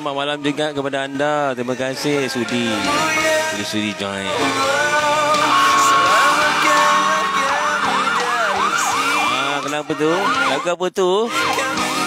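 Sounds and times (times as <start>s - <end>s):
music: 0.0s - 12.0s
electronic siren yelp: 2.7s - 3.5s, 4.6s - 12.0s.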